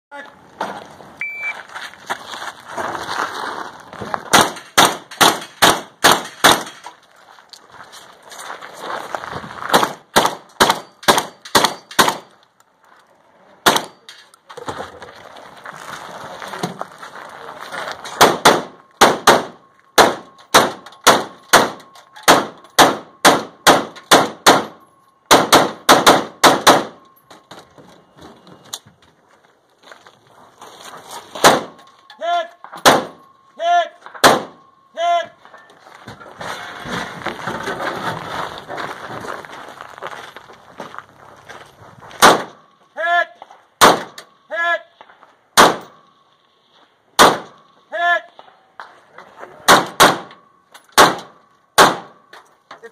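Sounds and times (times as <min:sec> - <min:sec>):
shot timer beep: 0:01.2 - 0:01.6.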